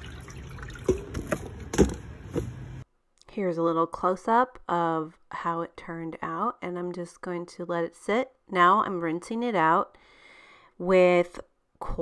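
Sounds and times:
outdoor background noise: 0:00.0 - 0:03.2.

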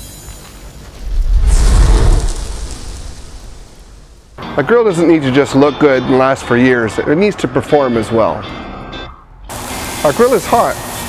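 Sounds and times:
fiery whoosh: 0:01.0 - 0:04.4.

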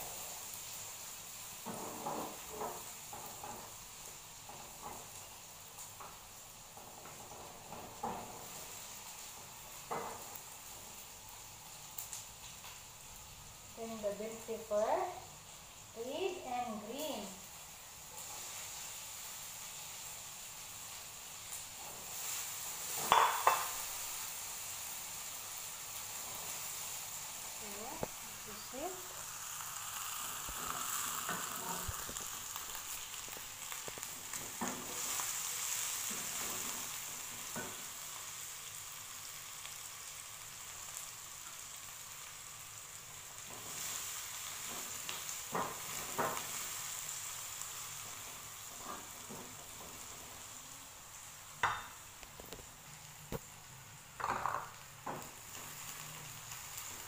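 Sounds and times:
vegetables sizzling in a frying pan: 0:00.0 - 0:57.0
spatula scraping and tapping pan: 0:01.6 - 0:03.8, 0:22.9 - 0:23.8, 0:33.3 - 0:35.3.

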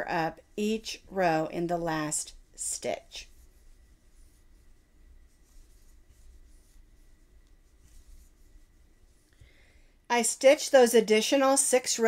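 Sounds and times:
yarn rustling with crochet hook: 0:00.0 - 0:09.7
low room hum: 0:00.0 - 0:12.0.

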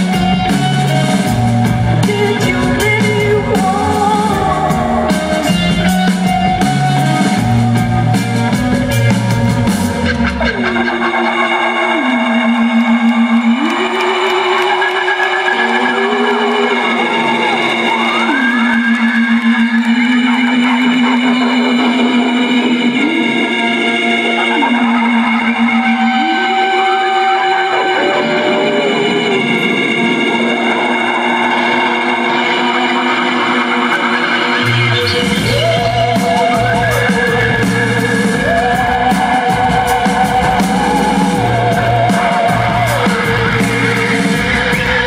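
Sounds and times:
deep bass: 0:00.0 - 0:26.6, 0:28.0 - 0:45.0
gliding lead melody with vibrato: 0:00.0 - 0:45.0
sustained chords: 0:00.0 - 0:45.0.

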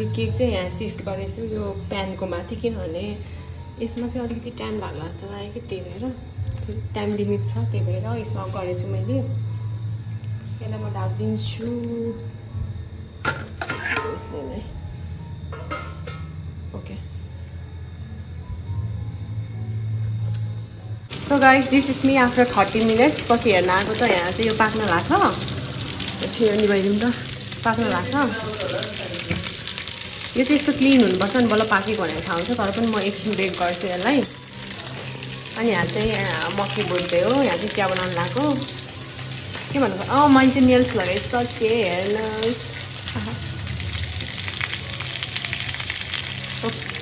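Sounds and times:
steady low hum: 0:00.0 - 0:13.7, 0:14.3 - 0:45.0.

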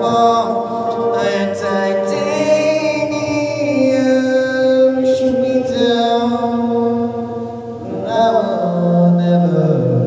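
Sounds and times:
young man singing into microphone: 0:00.0 - 0:10.0.

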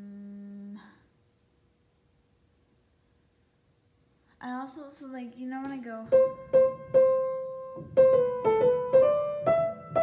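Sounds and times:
girl humming: 0:00.0 - 0:01.1.

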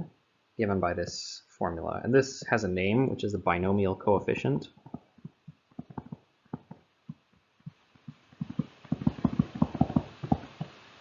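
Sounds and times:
stylus tapping on tablet screen: 0:04.8 - 0:10.8.

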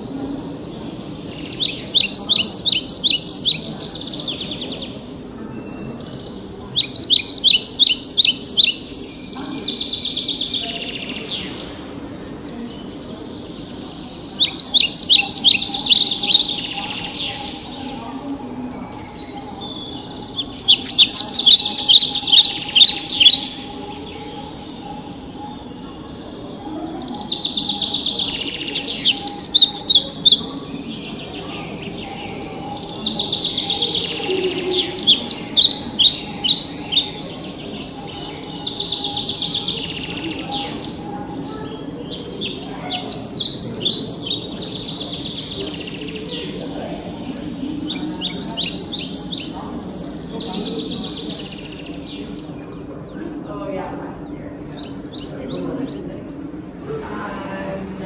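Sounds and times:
soft bird calls: 0:00.0 - 0:56.8
recorded bird song: 0:00.0 - 0:58.0.

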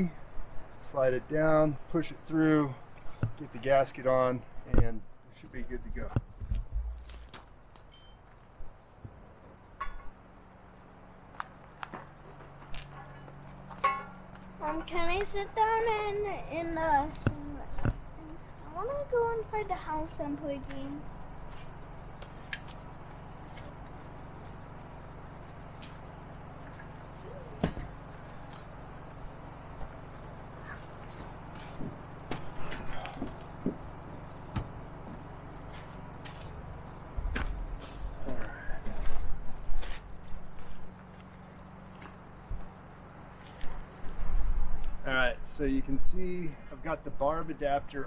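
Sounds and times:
steady low hum: 0:00.0 - 0:48.0
knocks and thumps: 0:06.1 - 0:07.1.

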